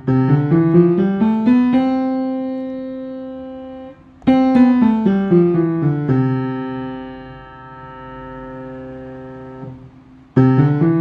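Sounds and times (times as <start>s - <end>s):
electric piano chord: 0.0s - 11.0s.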